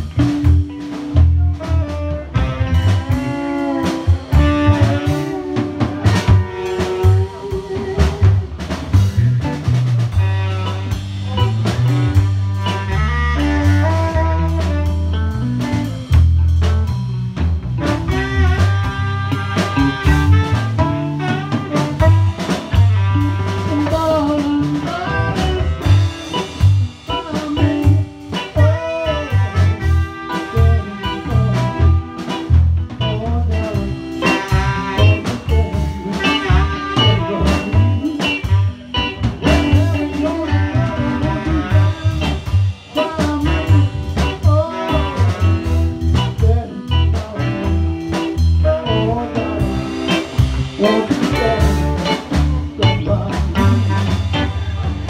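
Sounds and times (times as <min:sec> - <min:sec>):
drum beat: 0:00.0 - 0:48.8, 0:49.4 - 0:55.0
live band playing: 0:00.0 - 0:55.0
saxophone: 0:00.0 - 0:55.0
man singing into a microphone: 0:23.8 - 0:25.8, 0:27.1 - 0:29.4, 0:30.3 - 0:32.2, 0:39.4 - 0:42.1, 0:43.0 - 0:47.8, 0:48.6 - 0:50.2, 0:50.8 - 0:54.1.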